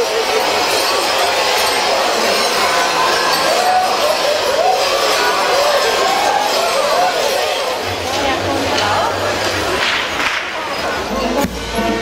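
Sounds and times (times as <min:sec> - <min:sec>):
crowd voices and calls: 0:00.0 - 0:12.0
large bells jangling: 0:00.0 - 0:12.0.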